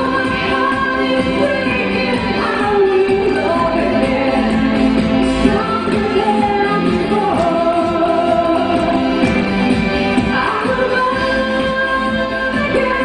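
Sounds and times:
musical accompaniment: 0.0s - 13.0s
woman singing into microphone: 0.0s - 13.0s.

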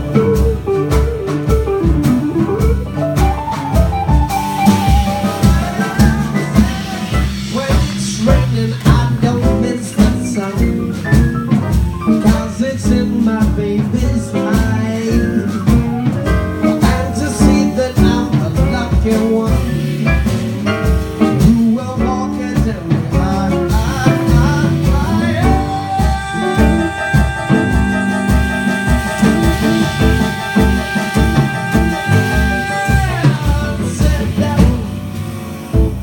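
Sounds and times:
drum kit beat: 0.0s - 36.0s
grand piano: 0.0s - 36.0s
upright double bass: 0.0s - 36.0s.

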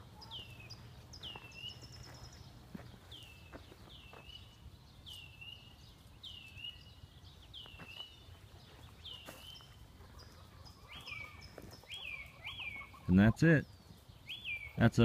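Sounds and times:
bird calling: 0.0s - 14.9s.

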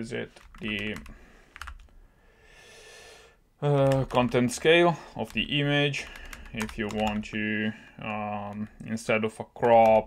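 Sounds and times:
computer keyboard keystrokes: 0.3s - 1.9s, 3.7s - 4.4s, 6.0s - 7.3s, 9.6s - 10.0s.

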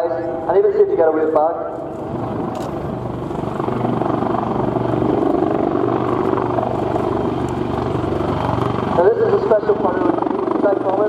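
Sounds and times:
turbine engines: 0.0s - 11.0s
helicopter rotors chopping: 0.2s - 11.0s.

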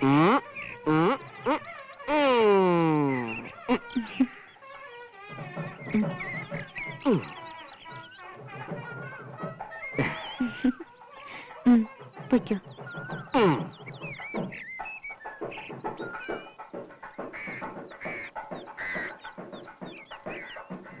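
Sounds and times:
hens clucking: 0.0s - 21.0s
small birds chirping: 0.0s - 21.0s.

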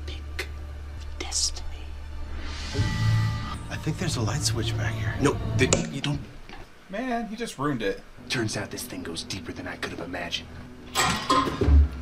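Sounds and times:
person whispering: 0.0s - 2.0s.

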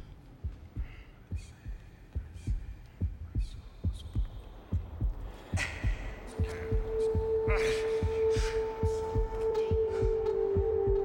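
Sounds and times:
heartbeat-like thumping pulse: 0.0s - 11.0s.

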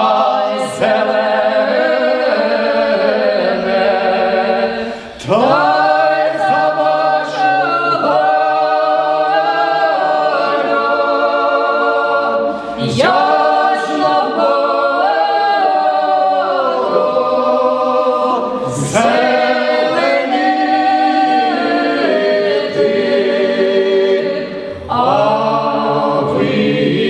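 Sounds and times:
choir singing a cappella: 0.0s - 27.0s.

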